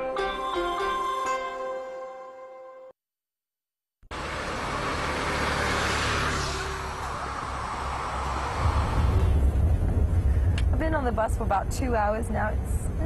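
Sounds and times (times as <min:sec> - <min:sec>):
rushing noise: 0:04.1 - 0:10.9
bus engine and tyres rumbling: 0:04.1 - 0:13.0.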